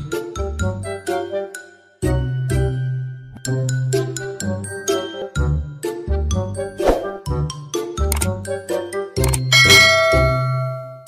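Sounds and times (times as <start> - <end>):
light background music: 0.0 - 11.0
bright bell ding: 9.6 - 11.0.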